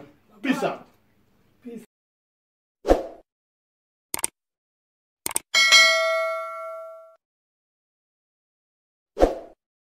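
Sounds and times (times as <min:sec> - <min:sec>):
quick clicks: 0:04.1 - 0:04.4, 0:05.2 - 0:05.5
bell-like ding: 0:05.6 - 0:07.2.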